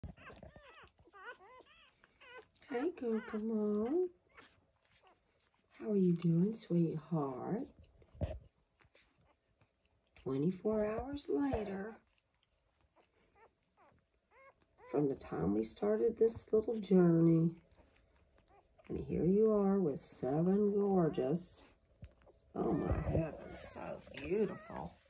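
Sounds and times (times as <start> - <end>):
puppies squeaking and whimpering: 0.0 - 5.9, 11.5 - 15.6, 17.0 - 18.9, 21.0 - 25.0.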